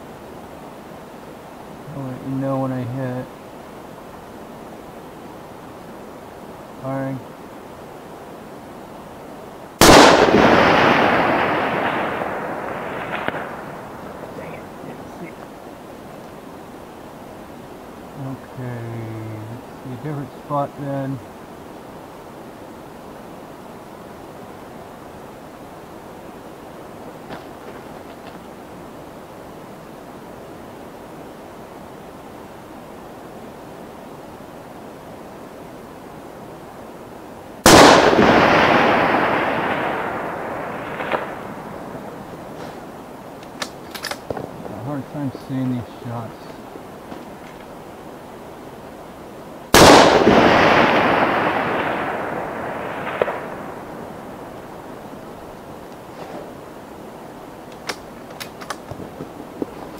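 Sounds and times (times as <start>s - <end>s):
rifle shots: 9.8s - 14.5s, 37.6s - 41.5s, 49.7s - 53.8s.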